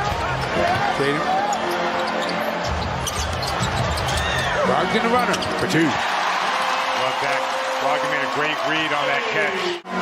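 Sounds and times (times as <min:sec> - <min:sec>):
arena crowd noise: 0:00.0 - 0:10.0.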